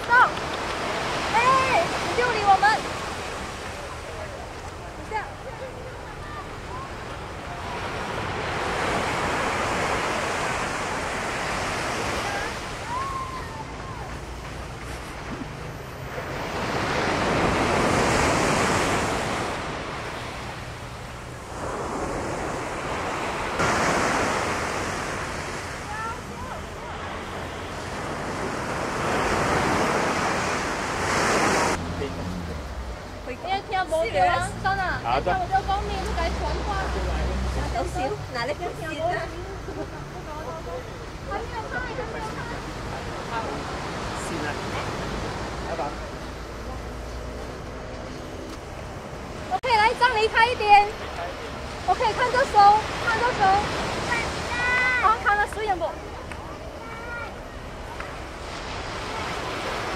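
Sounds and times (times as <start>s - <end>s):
surf washing up shore: 0.0s - 59.9s.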